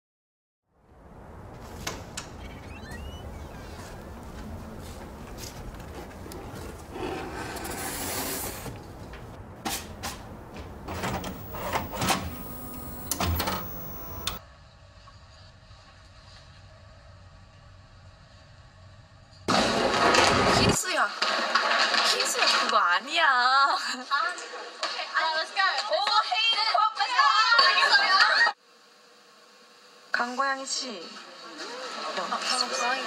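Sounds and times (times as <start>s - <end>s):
faint steady hum with thin tones: 10.3s - 14.4s
women's voices from camcorder footage: 22.0s - 28.5s, 30.2s - 33.0s.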